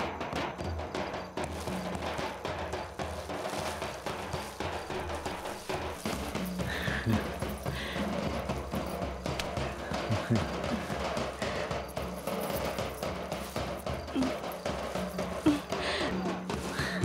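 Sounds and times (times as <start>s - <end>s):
steady drum pattern: 0.0s - 17.0s.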